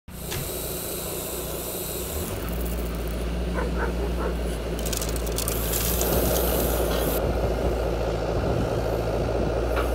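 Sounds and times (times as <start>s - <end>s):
hydraulic hiss: 0.1s - 3.3s
hydraulic pump humming: 0.1s - 8.8s.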